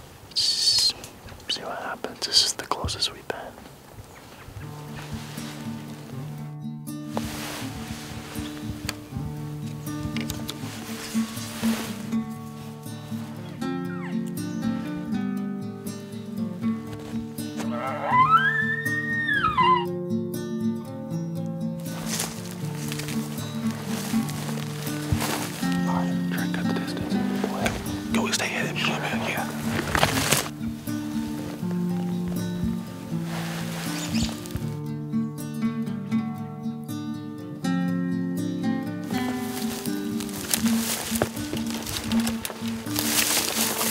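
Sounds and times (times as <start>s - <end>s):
background music low notes: 4.5s - 43.9s
elk bugling: 7.6s - 15.2s, 15.8s - 20.1s, 21.9s - 34.8s.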